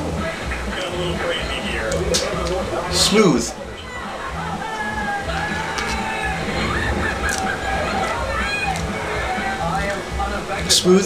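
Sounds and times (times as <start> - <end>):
indistinct broadcast sound: 0.0 - 11.0
television music: 0.0 - 11.0.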